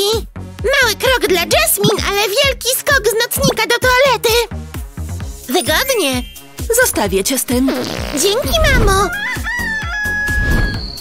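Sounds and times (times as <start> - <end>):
upbeat background music: 0.0 - 11.0
rooster crowing: 9.0 - 10.9.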